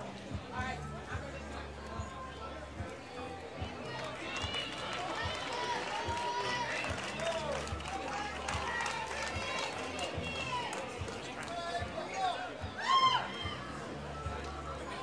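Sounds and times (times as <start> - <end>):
spectators chattering: 0.0 - 15.0.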